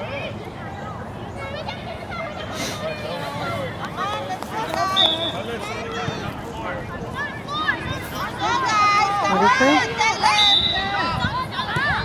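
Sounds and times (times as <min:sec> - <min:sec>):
voices calling out: 0:00.0 - 0:12.0.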